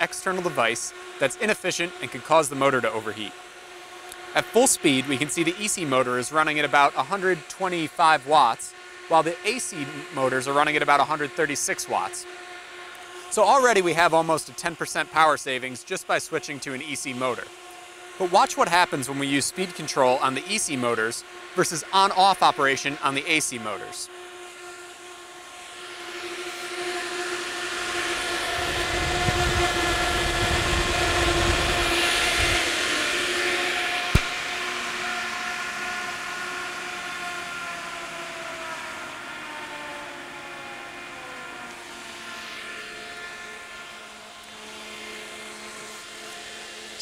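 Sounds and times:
fans humming: 0.0s - 47.0s.

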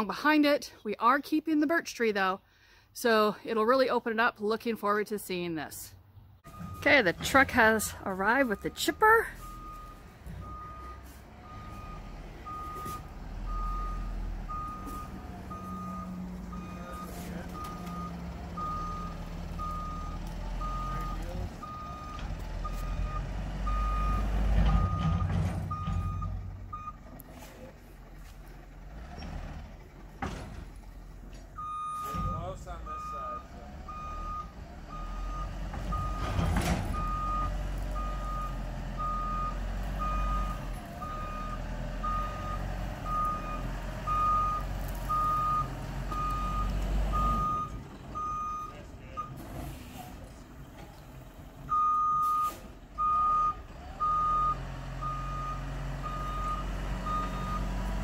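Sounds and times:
diesel engine rumble: 4.4s - 58.0s
reversing alarm beeping: 6.5s - 27.0s, 31.6s - 49.4s, 51.7s - 57.9s.

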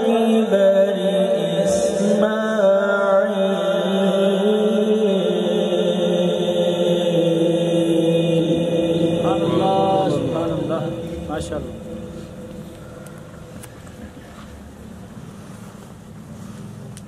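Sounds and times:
man reciting melodically: 0.0s - 13.6s.

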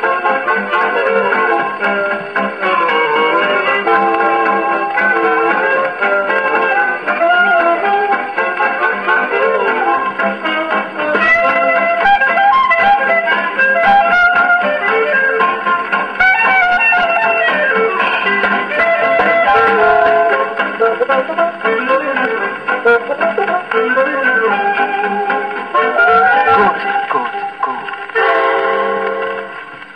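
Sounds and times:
old record of guitar and brass: 0.0s - 29.9s.

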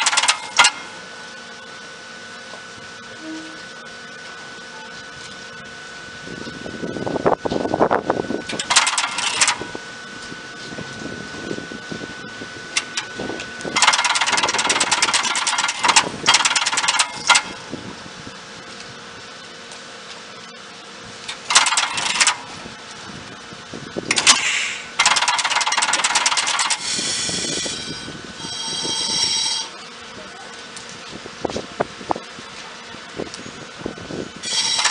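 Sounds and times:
sharp relay clicks: 0.0s - 0.9s, 8.5s - 9.6s, 12.8s - 17.6s, 21.2s - 22.5s, 24.1s - 27.8s, 34.4s - 34.9s
pitched whine: 0.0s - 34.9s
train contactors buzzing and clattering: 0.0s - 34.9s.

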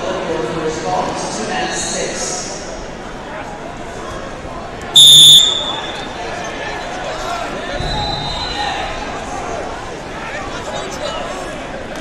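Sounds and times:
crowd chatter in echoing hall: 0.0s - 12.0s.

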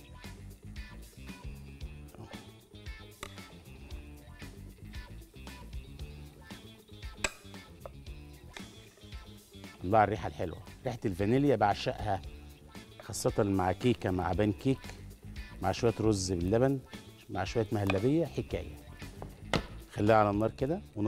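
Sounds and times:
background music with low notes: 0.0s - 21.0s.

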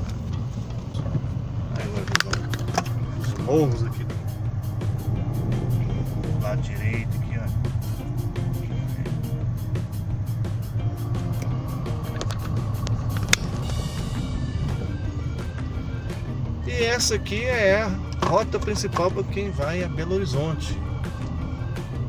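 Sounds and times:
car cabin rumble: 0.0s - 22.0s
music with steady beat: 2.4s - 22.0s.

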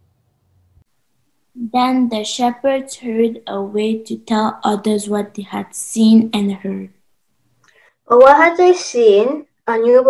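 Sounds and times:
young narrator reading aloud: 1.6s - 7.0s, 8.1s - 10.0s.

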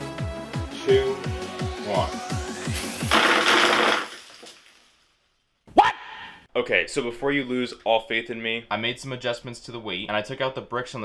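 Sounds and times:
video game music with beat: 0.0s - 2.7s.

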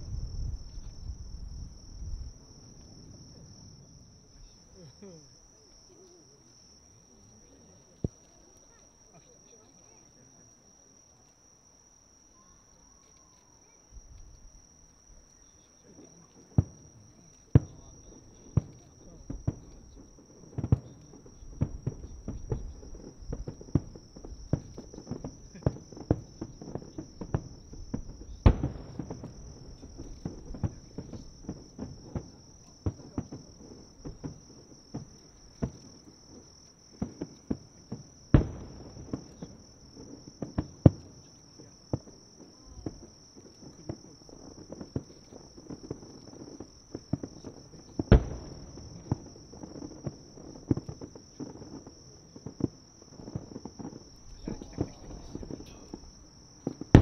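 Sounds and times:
loud firework booms: 0.0s - 5.2s, 15.8s - 57.0s
fireworks popping and booming: 0.0s - 10.1s, 13.4s - 57.0s
insects trilling: 0.0s - 57.0s.

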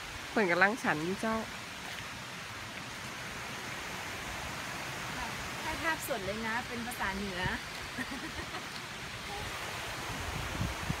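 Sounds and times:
wind buffeting a phone microphone: 5.8s - 8.0s, 9.2s - 11.0s.

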